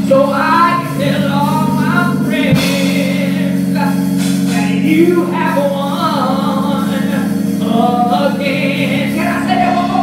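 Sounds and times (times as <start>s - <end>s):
organ chords: 0.0s - 10.0s
person singing: 0.0s - 10.0s.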